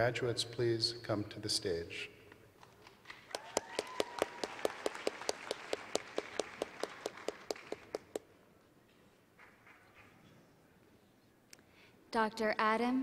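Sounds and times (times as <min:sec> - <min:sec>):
hand claps: 0:02.7 - 0:08.3.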